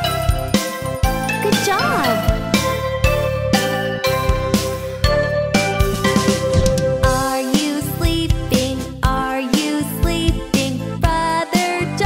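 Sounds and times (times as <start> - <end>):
children's song backing music: 0.0 - 12.0
wavering cartoon voice: 1.5 - 2.3.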